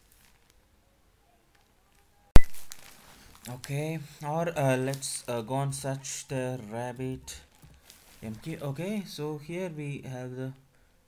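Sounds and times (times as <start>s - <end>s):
sharp loud click: 2.4s - 2.6s.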